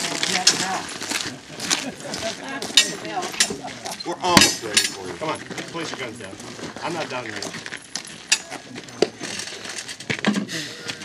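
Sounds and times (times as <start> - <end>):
people talking indistinctly: 0.0 - 9.4.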